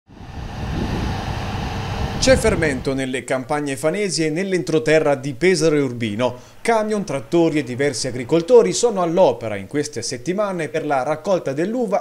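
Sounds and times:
wind buffeting microphone: 0:00.1 - 0:03.2, 0:05.4 - 0:09.6.

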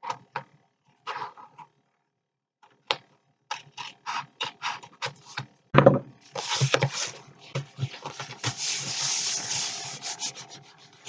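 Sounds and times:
paper rubbing on paper: 0:06.3 - 0:11.0
paper rustling: 0:06.3 - 0:11.0.

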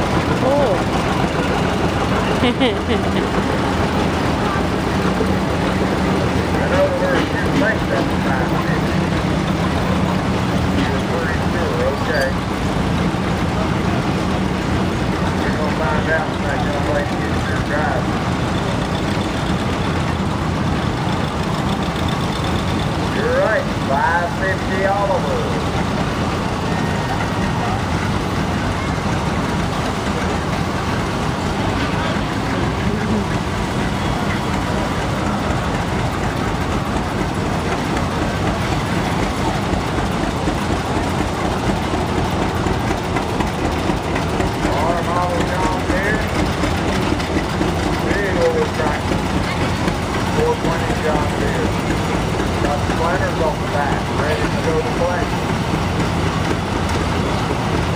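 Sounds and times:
tractor engine running: 0:00.0 - 0:57.9
voices: 0:00.0 - 0:57.9.

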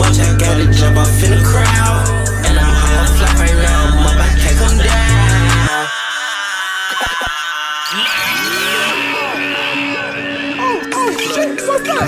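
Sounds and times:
high held synth notes: 0:00.0 - 0:05.7.

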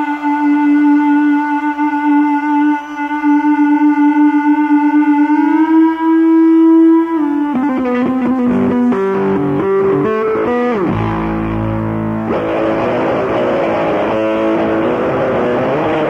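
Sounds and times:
distorted electric bass solo: 0:07.6 - 0:16.0.

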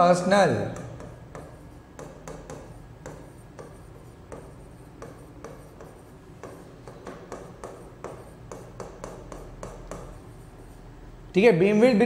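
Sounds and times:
scratchy writing strokes on board: 0:00.6 - 0:11.2
sharp taps on board: 0:00.7 - 0:10.2.

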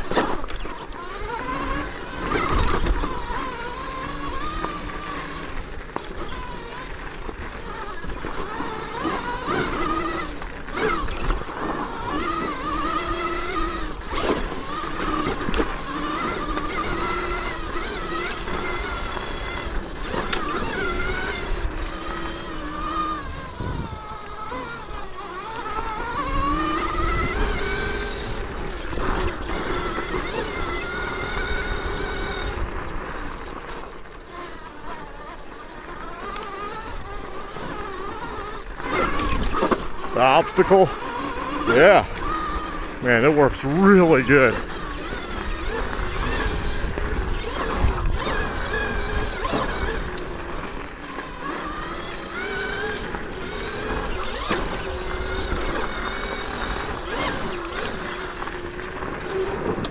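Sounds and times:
electric dirt bike motor whining: 0:00.0 - 0:59.9.

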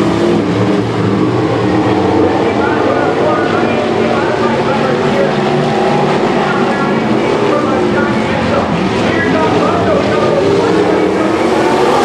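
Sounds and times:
race car engines roaring: 0:00.0 - 0:12.0.

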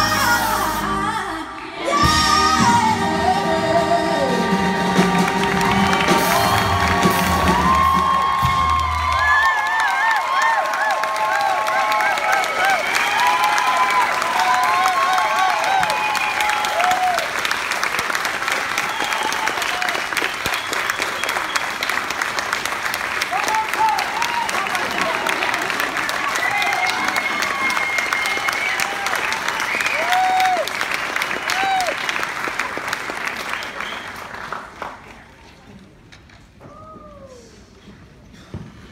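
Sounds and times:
audience applauding: 0:04.7 - 0:35.7.

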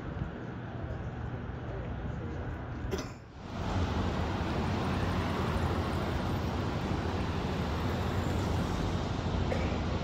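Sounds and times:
cars driving past: 0:03.4 - 0:10.0.

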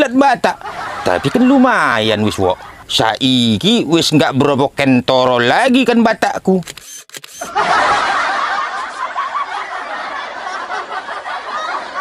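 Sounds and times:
people laughing: 0:00.5 - 0:02.9, 0:07.4 - 0:12.0.

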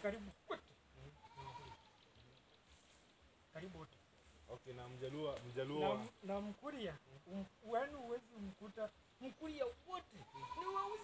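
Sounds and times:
men talking: 0:00.0 - 0:02.8, 0:03.5 - 0:11.0.

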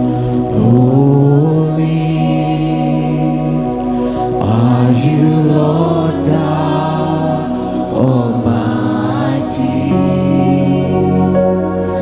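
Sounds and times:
guitar: 0:00.0 - 0:12.0
keyboard: 0:00.0 - 0:12.0
voices singing held notes: 0:00.0 - 0:12.0.

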